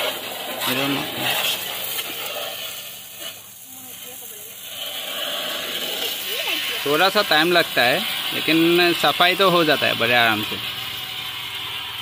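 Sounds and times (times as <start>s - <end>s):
pressure washer water jet hissing: 0.0s - 12.0s.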